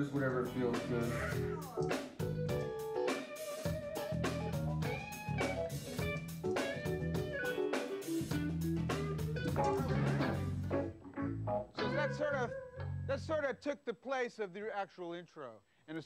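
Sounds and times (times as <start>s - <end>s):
bass notes: 0.0s - 2.8s, 3.7s - 7.6s, 8.2s - 13.5s
drum kit: 0.0s - 11.0s
electric guitar chords: 0.0s - 13.3s.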